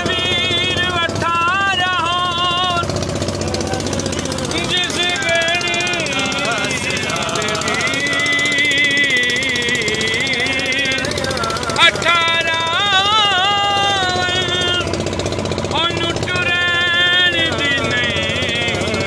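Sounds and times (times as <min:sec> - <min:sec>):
men talking loudly: 0:00.0 - 0:19.0
motorboat engine knocking: 0:00.0 - 0:19.0.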